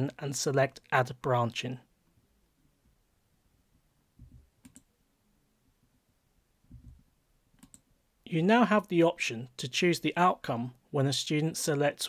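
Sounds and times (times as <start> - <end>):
soft low thuds: 4.2 - 4.5, 6.7 - 7.0
computer mouse clicks: 4.2 - 4.9, 7.6 - 7.9.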